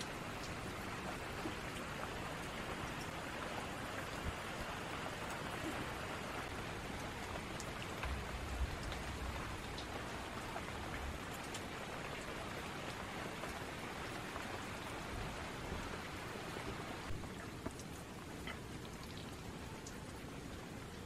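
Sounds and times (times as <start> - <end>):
raindrops ticking: 0.0 - 21.0
steady rain hiss: 0.0 - 21.0.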